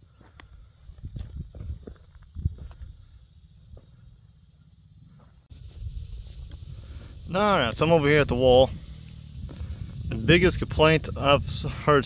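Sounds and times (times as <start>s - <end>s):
footsteps on dirt and stones: 0.0s - 4.0s, 5.1s - 6.7s
wind rumbling on microphone: 0.5s - 3.2s, 5.5s - 12.0s.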